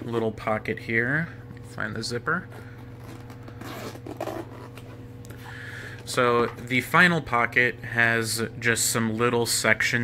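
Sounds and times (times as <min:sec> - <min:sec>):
zipper rasping: 0:02.9 - 0:05.0.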